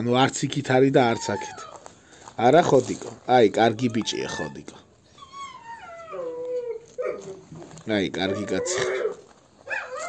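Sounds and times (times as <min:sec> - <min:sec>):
dog whining: 0:01.0 - 0:02.0, 0:03.7 - 0:07.6, 0:08.2 - 0:10.0.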